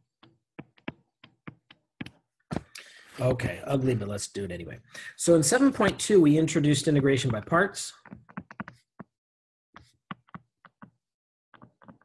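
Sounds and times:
stylus tapping on tablet screen: 0.1 - 2.7, 7.2 - 9.1, 9.8 - 12.0.

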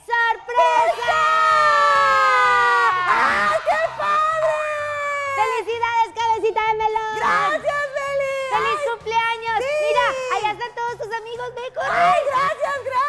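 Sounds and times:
shrieks and shouts: 0.4 - 5.8.

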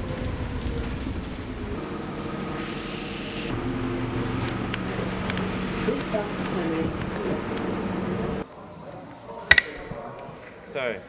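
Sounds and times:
bus engine humming: 0.0 - 8.4
road noise: 0.0 - 8.5.

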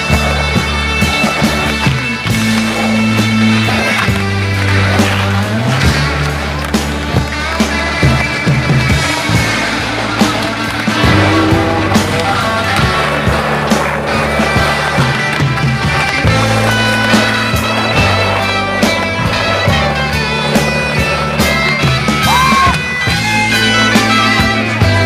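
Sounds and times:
rock music: 0.0 - 25.0
skateboard clacks: 0.0 - 25.0
skateboard wheels rolling on concrete: 0.0 - 25.0.

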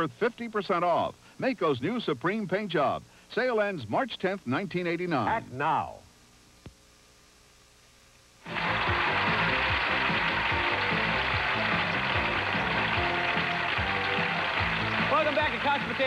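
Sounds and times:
studio audience applauding: 8.4 - 16.0
game show music: 8.5 - 16.0.

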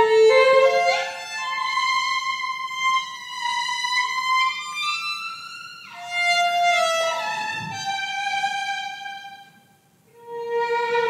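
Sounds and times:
solo violin slow melody: 0.0 - 11.0.

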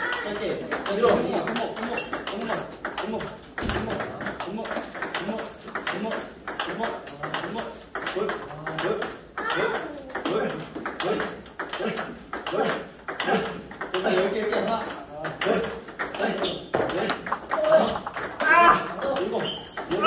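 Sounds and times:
table tennis ball hits: 0.0 - 20.0.

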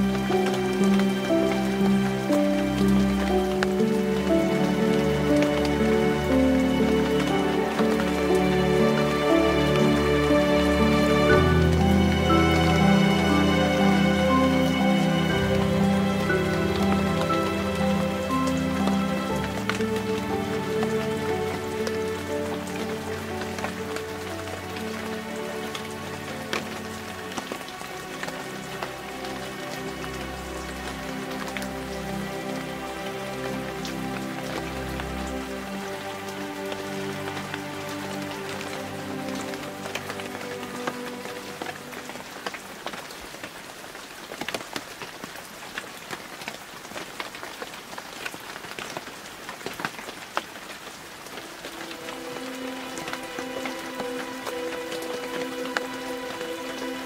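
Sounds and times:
meditation music tones: 0.0 - 43.2, 50.9 - 57.0
steady rain falling: 0.0 - 57.0.

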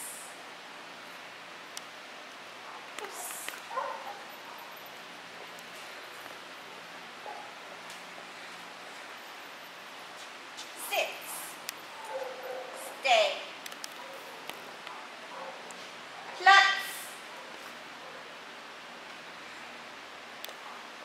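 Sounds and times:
background hiss: 0.0 - 21.0.

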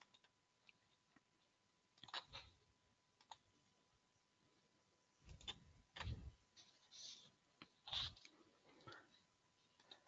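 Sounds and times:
computer mouse clicks: 3.2 - 3.5, 5.3 - 6.2.

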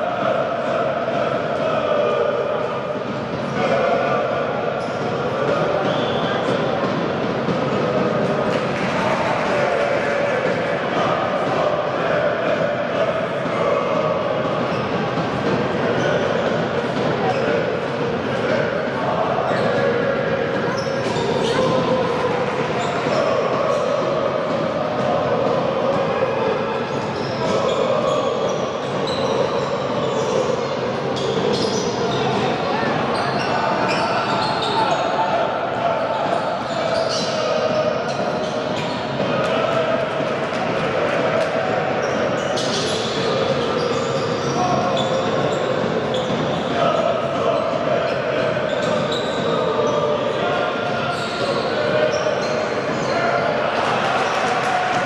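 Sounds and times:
voices in a large hall: 0.0 - 55.0
shoes squeaking: 31.2 - 32.4, 33.1 - 35.2, 42.0 - 47.7, 48.7 - 50.1, 51.1 - 53.3.

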